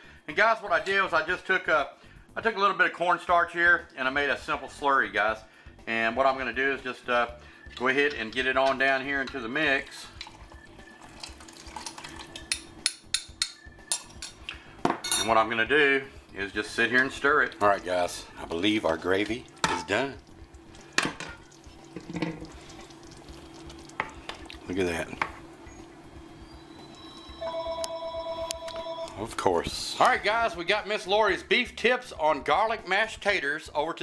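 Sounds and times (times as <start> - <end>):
spoon stirring slurry: 7.6 - 12.6, 16.8 - 27.1
spoon clinking against glass: 12.4 - 14.4, 15.0 - 15.3
steady electronic tone: 25.6 - 29.1.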